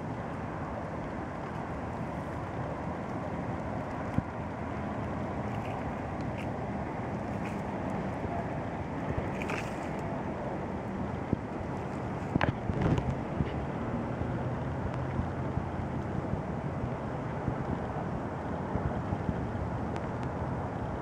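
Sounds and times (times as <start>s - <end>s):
wind on microphone: 0.0s - 21.0s.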